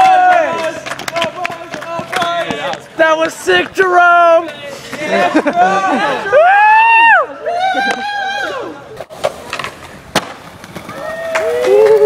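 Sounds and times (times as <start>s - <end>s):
skateboard clacking on ground: 0.0s - 5.6s, 9.0s - 12.0s
skateboard rolling on concrete: 0.0s - 12.0s.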